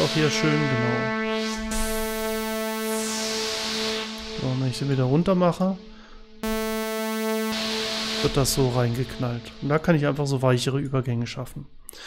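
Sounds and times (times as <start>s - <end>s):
gliding synthesizer tone: 0.0s - 5.6s, 6.4s - 10.8s
hissy synth upper layer: 6.4s - 10.2s.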